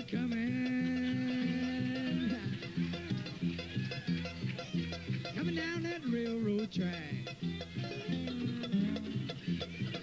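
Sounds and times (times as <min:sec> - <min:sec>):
bluegrass band playing: 0:00.0 - 0:10.0.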